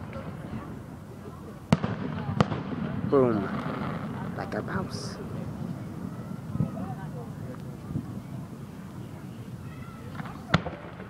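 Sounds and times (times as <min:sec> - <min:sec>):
crowd murmur and voices: 0:00.0 - 0:11.0
firework bang: 0:01.7 - 0:08.9, 0:10.0 - 0:11.0.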